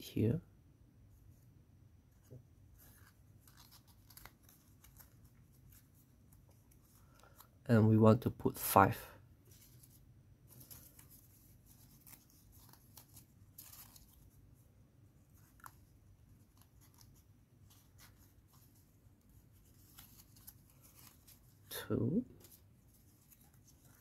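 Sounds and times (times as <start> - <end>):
paper rustling and crinkling: 2.2 - 7.6, 9.4 - 24.0.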